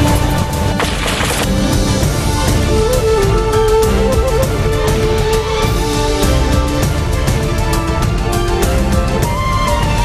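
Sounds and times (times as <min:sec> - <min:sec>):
noisy sound effect hit: 0:00.0 - 0:02.4.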